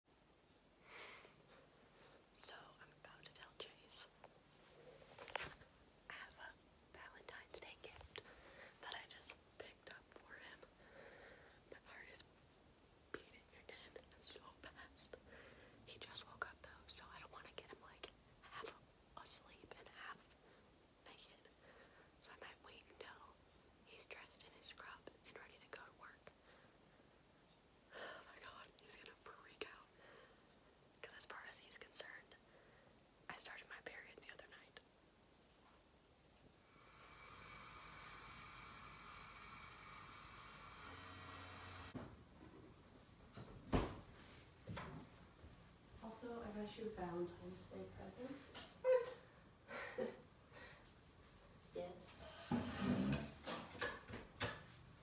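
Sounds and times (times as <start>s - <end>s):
woman whispering: 2.4s - 4.2s, 6.1s - 10.7s, 11.7s - 12.3s, 13.1s - 15.2s, 15.9s - 20.4s, 21.0s - 21.6s, 22.2s - 26.4s, 28.0s - 30.0s, 31.0s - 32.4s, 33.3s - 34.8s.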